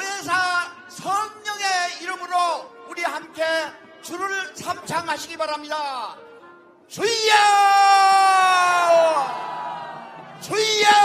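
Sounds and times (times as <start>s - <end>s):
man shouting through loudspeakers: 0.0s - 6.2s, 6.9s - 9.7s, 10.4s - 11.0s
crowd crying out: 7.2s - 11.0s.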